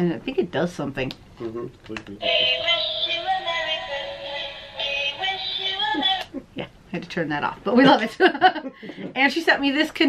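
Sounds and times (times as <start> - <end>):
electronic tune from small speaker: 2.2 - 6.0.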